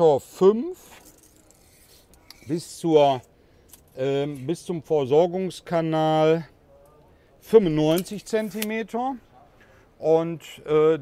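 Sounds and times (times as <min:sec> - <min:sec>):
man speaking: 0:02.5 - 0:03.2, 0:07.4 - 0:11.0.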